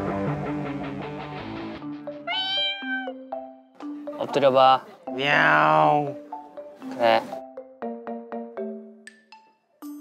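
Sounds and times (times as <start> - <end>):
background music: 0.0 - 10.0
cat meowing: 2.3 - 3.2.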